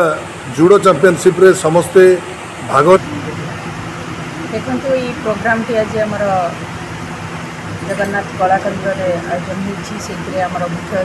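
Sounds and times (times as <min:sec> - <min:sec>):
low background hum: 0:00.0 - 0:11.0
woman speaking: 0:04.4 - 0:06.7, 0:07.8 - 0:11.0.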